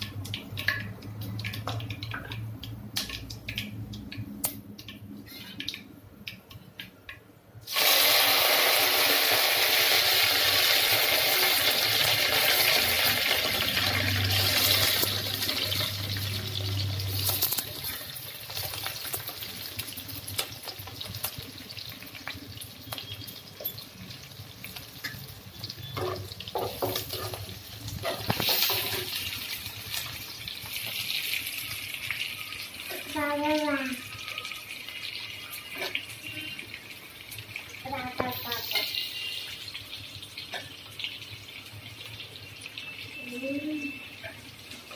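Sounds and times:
onions sizzling in hot oil: 7.6 - 44.9.

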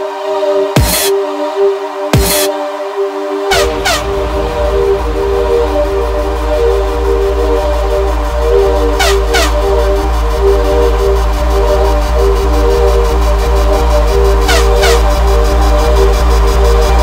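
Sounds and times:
held synth chords: 0.8 - 17.0
falling synth sweeps: 3.5 - 17.0
pulsing sub-bass: 3.5 - 17.0.

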